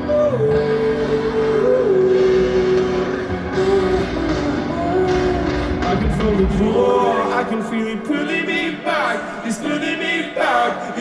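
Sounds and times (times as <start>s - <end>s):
bass: 0.0s - 7.6s
drums: 0.0s - 7.6s
live band music: 0.0s - 7.6s.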